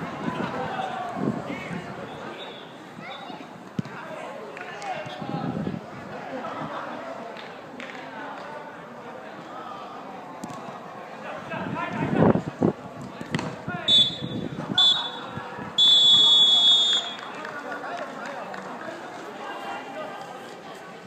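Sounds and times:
referee's whistle blasts: 0:13.9 - 0:17.3.

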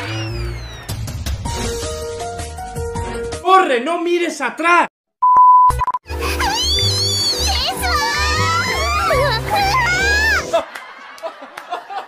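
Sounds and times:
man talking excitedly: 0:03.4 - 0:04.9
censor bleep tone: 0:05.2 - 0:06.0.

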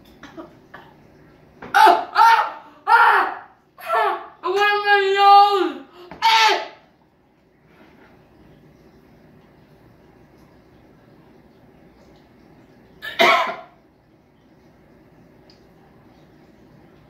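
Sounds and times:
child crying out: 0:01.8 - 0:06.8.

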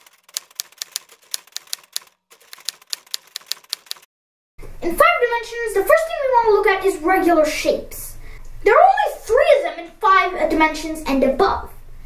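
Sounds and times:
typewriter key clicks: 0:00.0 - 0:04.1.

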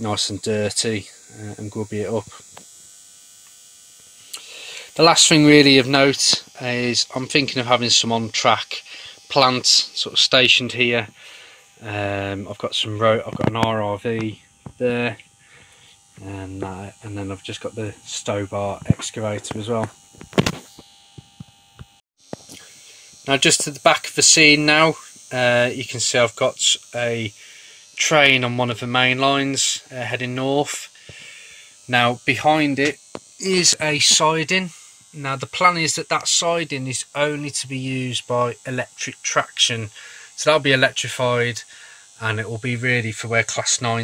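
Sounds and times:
person speaking: 0:00.0 - 0:02.5, 0:04.4 - 0:11.2, 0:11.8 - 0:15.2, 0:16.2 - 0:20.0, 0:23.3 - 0:27.4, 0:31.9 - 0:44.0
faint electrical hum: 0:00.0 - 0:44.0
intake of breath: 0:04.4 - 0:04.9, 0:08.9 - 0:09.2, 0:11.2 - 0:11.7, 0:31.0 - 0:31.8, 0:40.0 - 0:40.3, 0:41.7 - 0:42.1.

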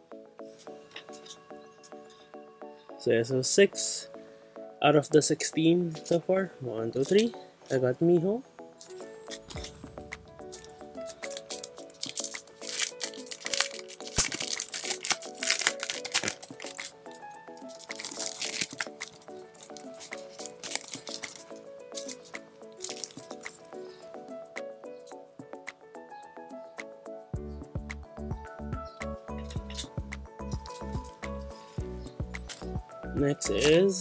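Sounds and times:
light background music: 0:00.0 - 0:34.0
plastic sleeve crinkling: 0:07.0 - 0:07.3, 0:08.8 - 0:24.1, 0:30.6 - 0:32.7.

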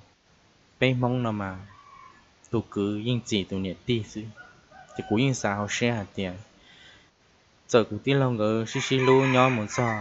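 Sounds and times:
man talking: 0:00.8 - 0:01.7, 0:02.5 - 0:06.6, 0:07.7 - 0:10.0.

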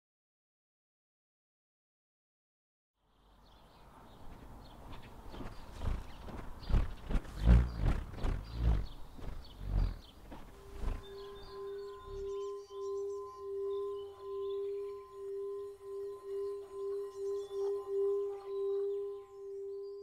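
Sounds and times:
bullroarer whirring in pulses: 0:05.7 - 0:12.5
steady ringing tone: 0:10.5 - 0:20.0.

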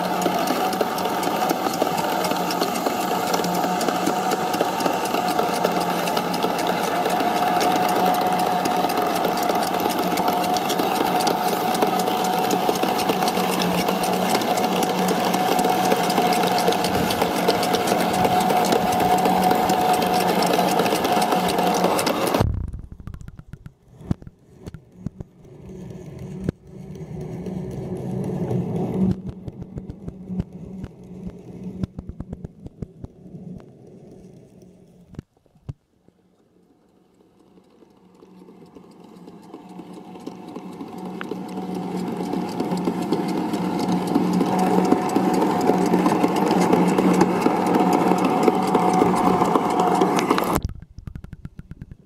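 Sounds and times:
sharp clicks and ticks: 0:00.0 - 0:34.2, 0:37.1 - 0:52.0
pool cleaner motor hum: 0:00.0 - 0:34.9, 0:36.4 - 0:52.0.

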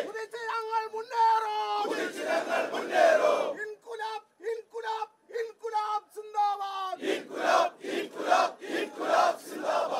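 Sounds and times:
crowd shouting slogans: 0:00.0 - 0:00.2, 0:01.6 - 0:03.6, 0:07.0 - 0:09.9.

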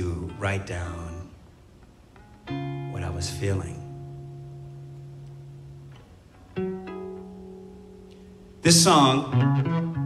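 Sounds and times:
acoustic guitar chords ringing: 0:02.2 - 0:10.0.

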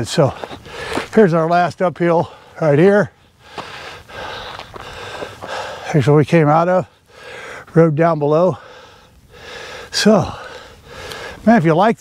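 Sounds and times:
man breathing hard: 0:00.4 - 0:01.1, 0:03.2 - 0:06.0, 0:07.0 - 0:07.7, 0:08.5 - 0:11.4.

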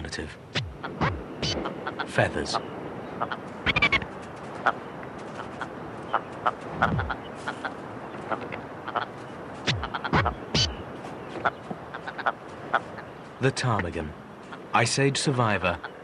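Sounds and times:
low falling bird croaks: 0:00.5 - 0:13.2
bird clucks and clicks: 0:00.5 - 0:14.8, 0:15.8 - 0:16.0.

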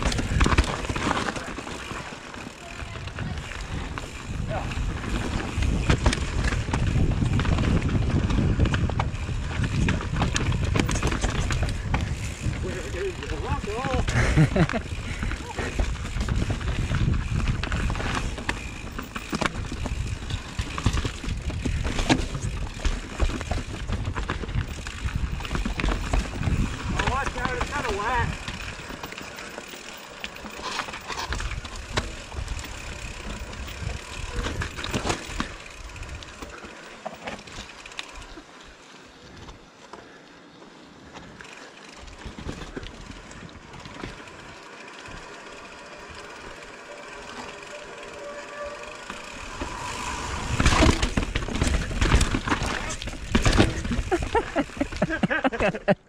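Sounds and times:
bike tyres crunching over rocks: 0:00.0 - 0:55.4
bike rattling: 0:00.0 - 0:56.0
wind on microphone: 0:02.9 - 0:13.2, 0:14.1 - 0:18.4, 0:23.8 - 0:27.6, 0:49.3 - 0:53.1
freehub buzz: 0:44.2 - 0:51.8.

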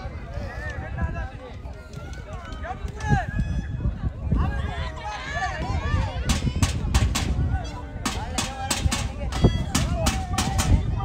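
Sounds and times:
people shouting: 0:04.9 - 0:11.0.

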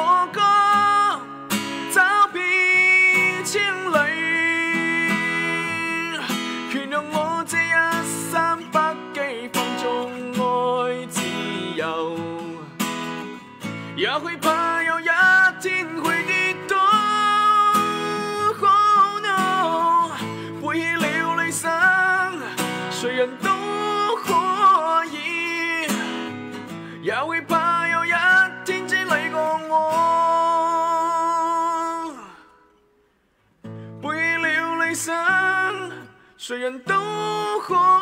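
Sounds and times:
man singing: 0:00.0 - 0:32.6, 0:33.9 - 0:38.0
acoustic guitar strummed: 0:00.0 - 0:38.0.

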